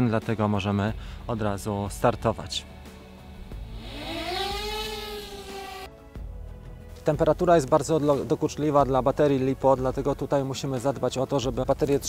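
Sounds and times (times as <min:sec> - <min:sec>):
quadcopter motors whining: 0:03.4 - 0:05.9.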